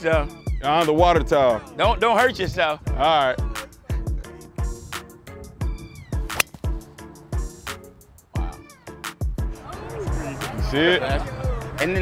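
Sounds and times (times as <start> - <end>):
hip-hop backing music: 0.0 - 12.0
golf club striking ball: 6.3 - 6.9.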